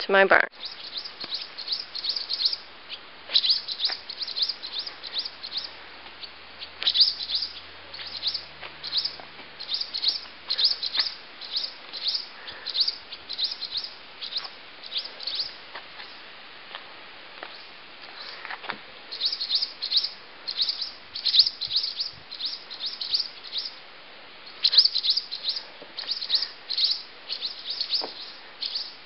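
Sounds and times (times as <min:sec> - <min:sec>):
small birds chirping sharply: 0:00.5 - 0:16.2, 0:17.4 - 0:23.8, 0:24.4 - 0:29.0.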